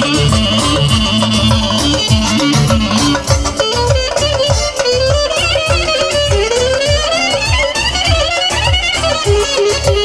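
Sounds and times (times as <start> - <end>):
clarinet melody: 0.0 - 10.0
loud bass drum beat: 0.0 - 10.0.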